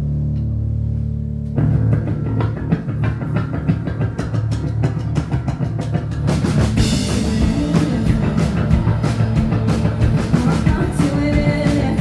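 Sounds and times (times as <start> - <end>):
electric bass: 0.0 - 12.0
electric guitar: 0.0 - 12.0
drum kit: 1.4 - 12.0.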